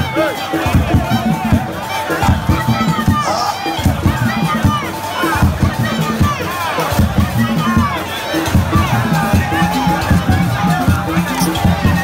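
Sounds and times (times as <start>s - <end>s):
crowd shouting and cheering: 0.0s - 12.0s
fast driving drums: 0.0s - 12.0s.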